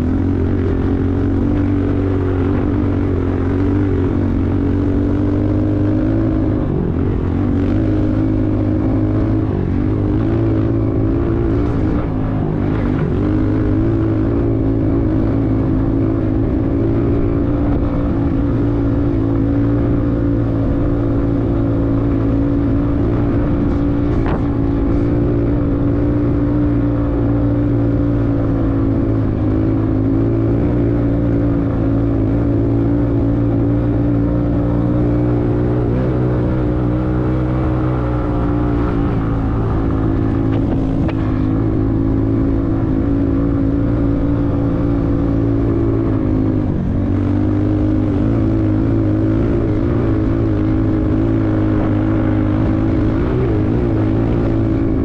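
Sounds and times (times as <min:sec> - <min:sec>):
vehicle engine running: 0:00.0 - 0:55.0.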